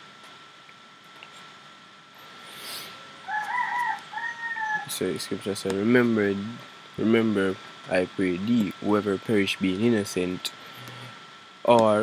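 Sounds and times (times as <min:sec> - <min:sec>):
rooster crowing: 0:03.2 - 0:05.0.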